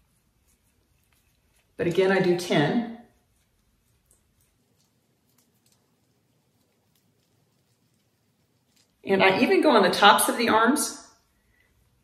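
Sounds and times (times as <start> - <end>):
faint clicks of skin roller: 0.0 - 2.0, 3.1 - 9.0.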